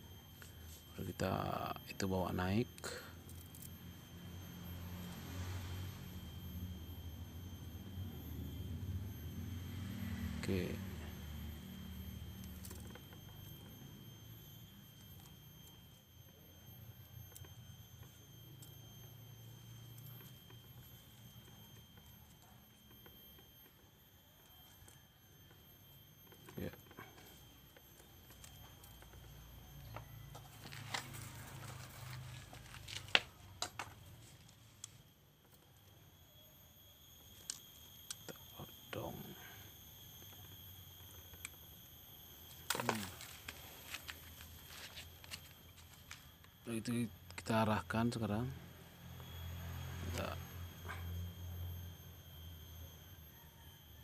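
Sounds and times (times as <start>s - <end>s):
low hum: 0.0s - 53.9s
high-pitched whine: 0.0s - 54.0s
wire rustling: 30.3s - 34.8s.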